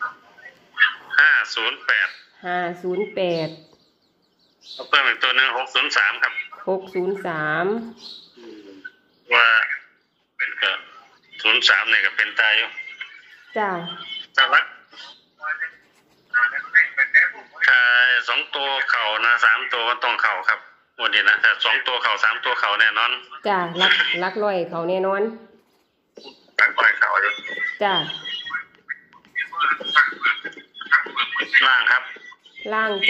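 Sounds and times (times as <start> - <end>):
person talking: 0.0 - 3.6, 4.8 - 25.4, 26.2 - 33.0.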